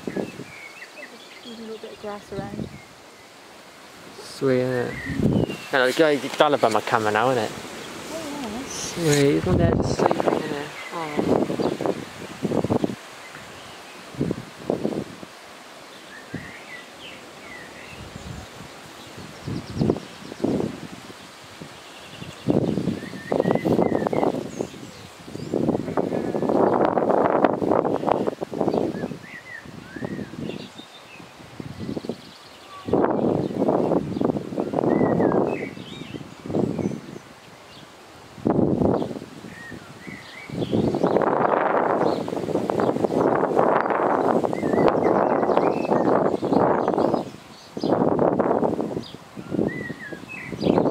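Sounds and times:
small birds chirping: 0.0 - 38.0, 38.8 - 50.9
leaves and grass rustling: 0.0 - 50.9.

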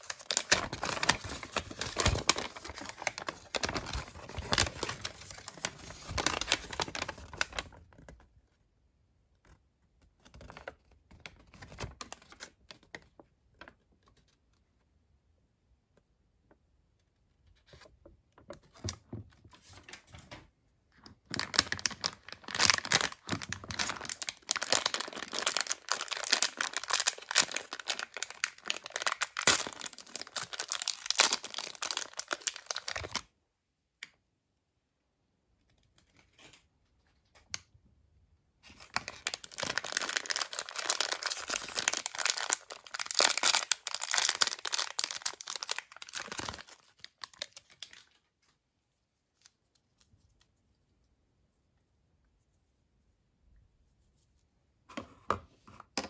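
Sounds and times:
plastic wrapper crinkling and tearing: 0.0 - 8.2, 10.2 - 14.3, 21.0 - 33.3, 38.6 - 48.5.

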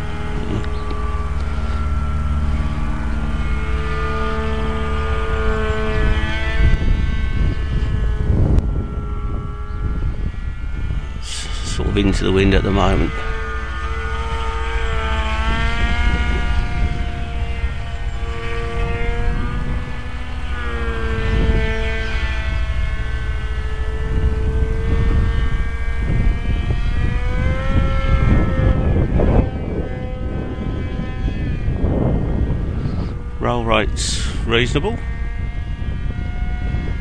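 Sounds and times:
electric motor and propeller whine: 0.0 - 37.0.

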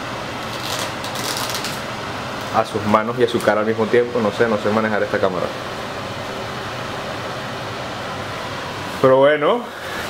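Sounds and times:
room ventilation hiss: 0.0 - 10.0
plastic wrap crinkling: 0.4 - 1.8.

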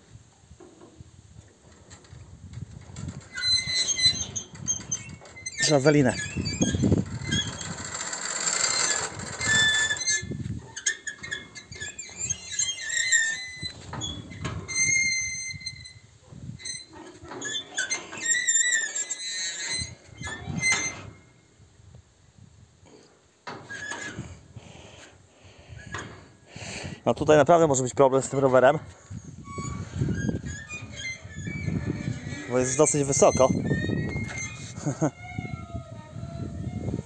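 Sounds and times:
cable pulley and chain squeaking: 2.9 - 21.4, 28.2 - 37.0.

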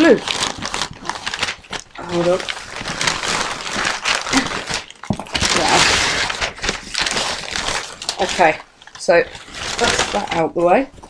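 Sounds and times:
paper crumpling and rustling: 0.0 - 11.0.

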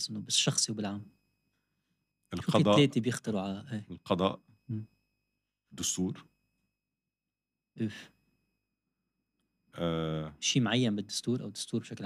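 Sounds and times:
breathing: 1.5 - 2.2.

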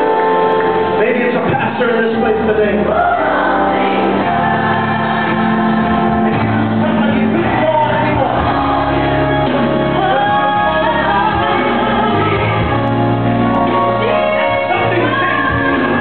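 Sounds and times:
gospel choir singing: 0.0 - 1.6, 2.2 - 16.0
instrumental accompaniment: 0.0 - 16.0
soloist singing into a microphone: 6.8 - 12.8, 13.7 - 16.0.

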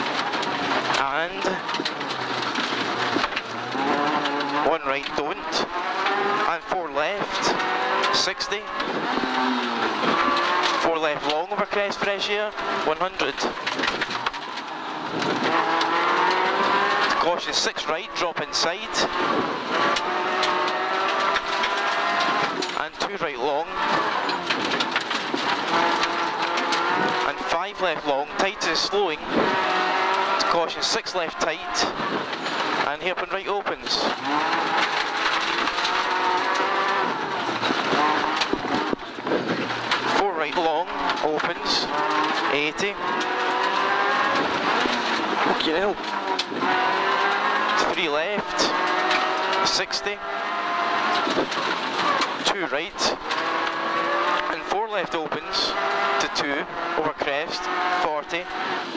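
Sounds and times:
rally car engine at high revs: 0.0 - 58.9.

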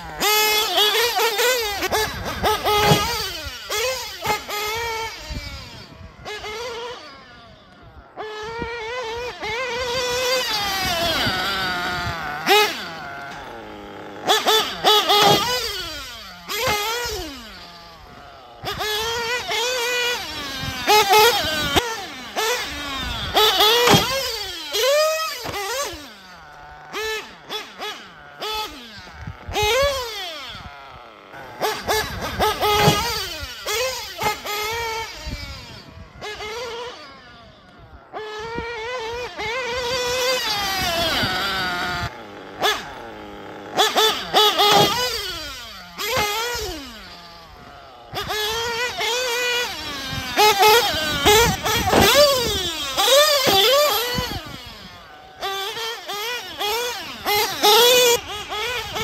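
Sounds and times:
small glow engine revving: 0.0 - 59.0.

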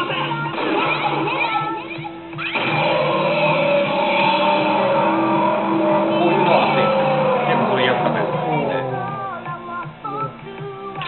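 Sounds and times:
slot machine game music: 2.4 - 9.0.

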